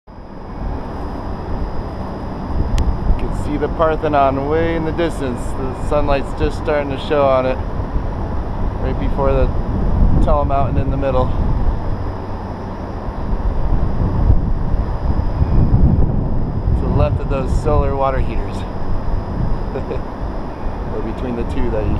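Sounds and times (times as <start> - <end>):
distant city hum: 0.1 - 21.9
thin steady high tone: 0.1 - 21.9
wind rumble: 0.1 - 21.9.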